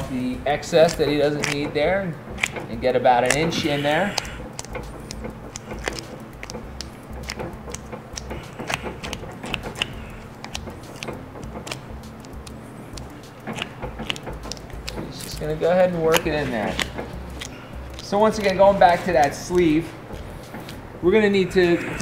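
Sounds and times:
cables clicking and rustling: 0:00.0 - 0:22.0.

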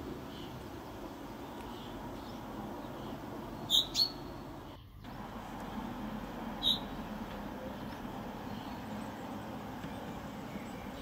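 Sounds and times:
low background hum: 0:00.0 - 0:11.0
small bird chirping: 0:00.3 - 0:07.1, 0:07.8 - 0:11.0.

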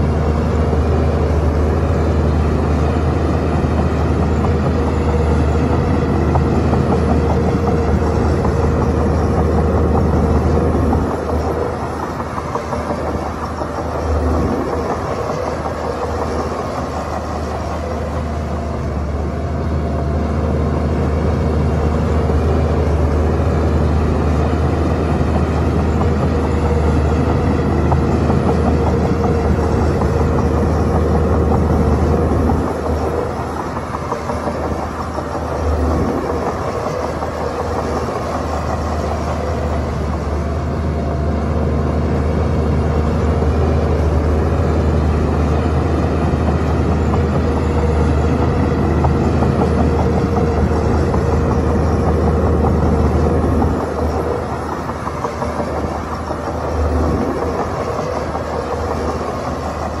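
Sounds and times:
bulldozer diesel engine under load: 0:00.0 - 1:00.0.

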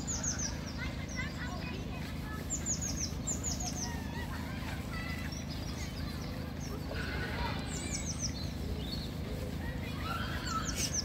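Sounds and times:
small birds singing and chirping: 0:00.0 - 0:11.0
steady low rumble: 0:00.0 - 0:11.0.

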